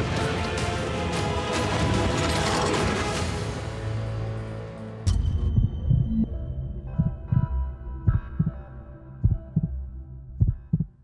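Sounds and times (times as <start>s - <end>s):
deep bass thumps: 6.9s - 8.6s, 9.2s - 11.0s.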